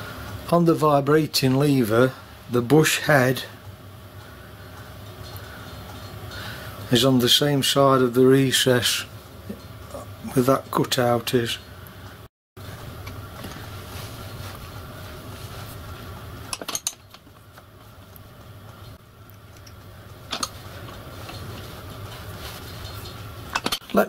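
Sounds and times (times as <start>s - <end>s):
steady low hum: 0.0s - 24.0s.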